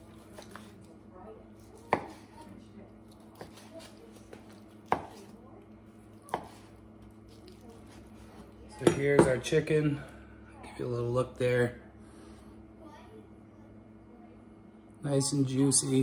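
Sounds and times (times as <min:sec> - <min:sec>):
knife slicing meat: 0:00.1 - 0:00.8, 0:03.1 - 0:05.4, 0:06.3 - 0:09.0.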